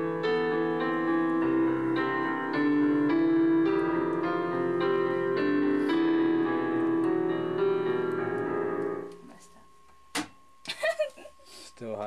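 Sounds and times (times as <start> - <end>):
digital piano chords: 0.0 - 9.5.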